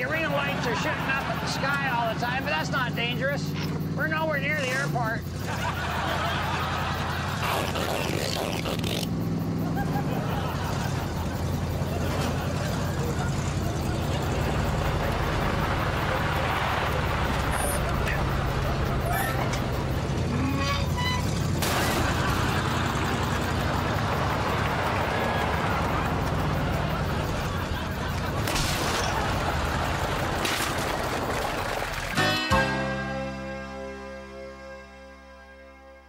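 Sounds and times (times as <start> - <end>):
car engine running: 0.0 - 32.2
van driving on gravel: 0.0 - 34.0
road noise: 0.0 - 36.0.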